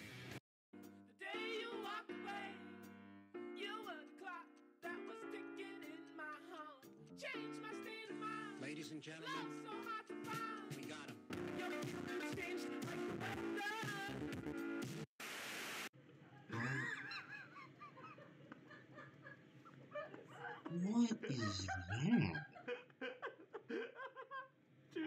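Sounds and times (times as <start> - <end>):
music: 0.0 - 15.1
pitch-shifted voices: 20.4 - 22.5.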